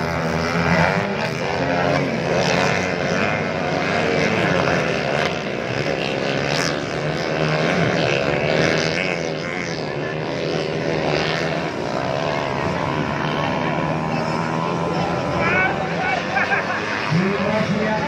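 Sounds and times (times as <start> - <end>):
motorcycle engines revving: 0.0 - 18.0.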